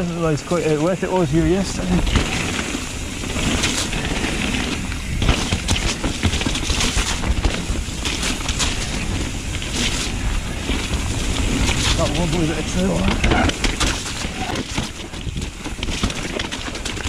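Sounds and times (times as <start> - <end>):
bike rattling and knocking: 0.0 - 17.0
bike tyres rumbling over dirt: 0.0 - 17.0.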